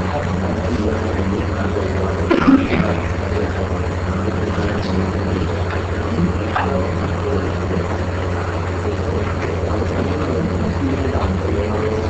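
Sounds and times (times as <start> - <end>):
constant hiss: 0.0 - 12.0
steady low hum: 0.0 - 12.0.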